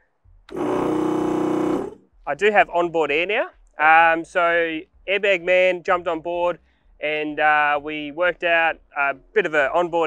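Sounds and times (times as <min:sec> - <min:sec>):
air compressor motor buzzing: 0:00.5 - 0:02.1.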